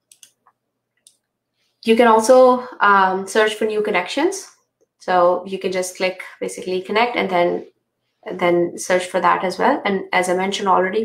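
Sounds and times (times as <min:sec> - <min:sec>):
computer mouse clicks: 0:00.0 - 0:01.3
woman speaking: 0:01.8 - 0:11.0.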